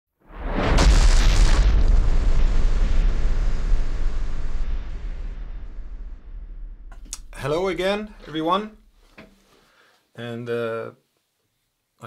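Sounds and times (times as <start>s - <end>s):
booming sound effect: 0.2s - 8.2s.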